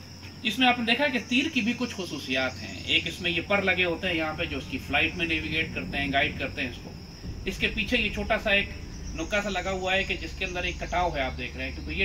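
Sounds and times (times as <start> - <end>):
high-pitched insect drone: 0.0 - 12.0
man talking: 0.4 - 12.0.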